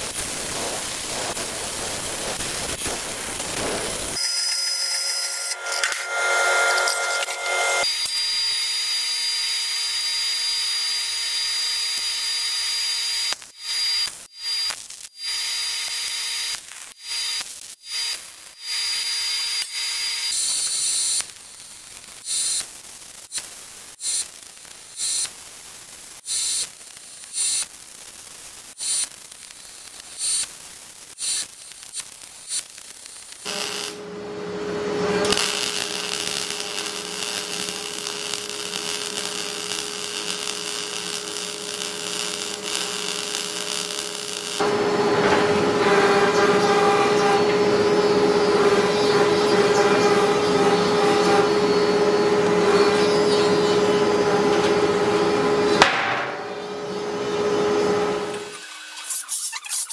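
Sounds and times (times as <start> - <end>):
workshop noise: 0.0 - 8.0, 33.5 - 59.9
tack welding bursts: 0.0 - 34.0, 35.2 - 44.7, 58.4 - 59.9
band saw cutting metal: 3.6 - 10.0, 33.4 - 53.6.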